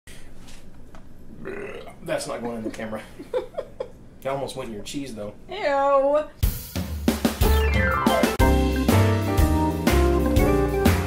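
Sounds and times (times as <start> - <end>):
man burping: 1.3 - 2.0.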